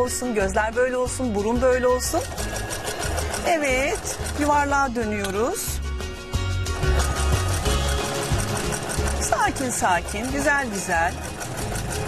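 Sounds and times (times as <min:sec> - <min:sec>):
background music: 0:00.0 - 0:12.0
sewing machine stitching: 0:02.0 - 0:05.4, 0:06.8 - 0:12.0.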